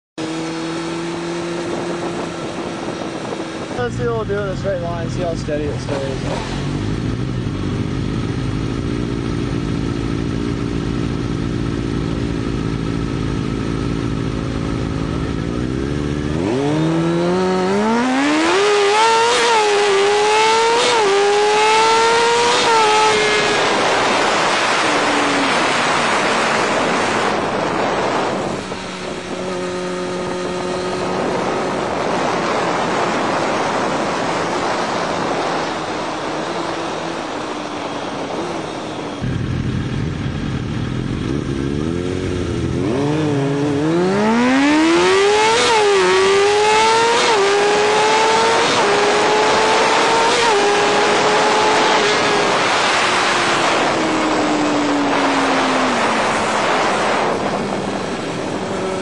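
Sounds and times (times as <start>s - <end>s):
motorcycle engine accelerating: 0.2s - 59.0s.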